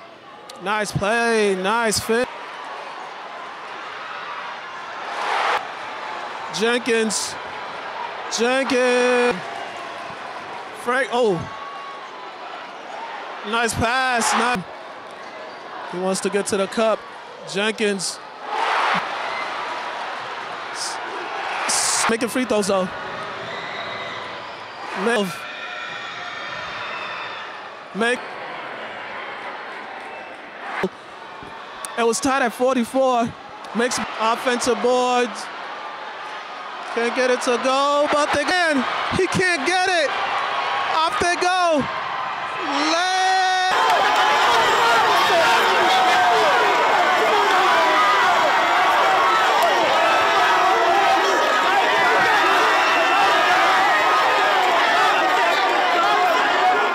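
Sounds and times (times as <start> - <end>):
arena crowd noise: 0.0 - 56.9
person yelling: 42.6 - 43.8.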